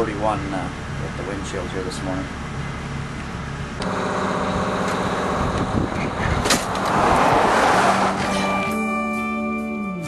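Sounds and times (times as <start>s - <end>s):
vehicle engine running: 0.0s - 6.9s
music with guitar-like tones: 8.3s - 10.0s.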